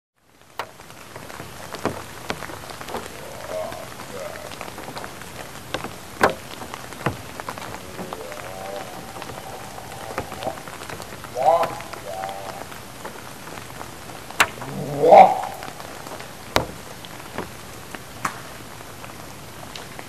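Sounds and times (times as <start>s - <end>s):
rain hiss: 0.2s - 20.0s
wavering voice-like call: 2.9s - 5.1s, 7.6s - 12.8s, 14.4s - 16.5s.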